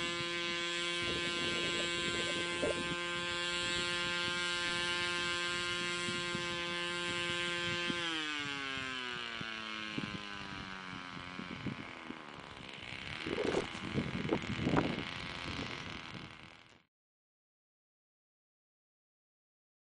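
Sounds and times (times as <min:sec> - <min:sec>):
wind buffeting microphone: 0:00.0 - 0:16.6
electric motor whine: 0:00.0 - 0:16.9.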